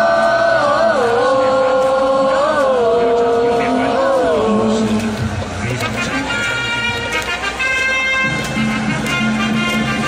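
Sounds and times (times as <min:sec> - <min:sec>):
cheer song over loudspeakers: 0:00.0 - 0:05.3.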